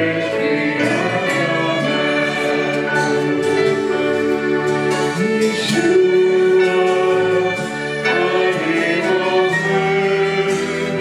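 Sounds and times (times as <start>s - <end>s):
flute: 0.0s - 11.0s
violin: 0.0s - 11.0s
vocal group singing: 0.0s - 11.0s.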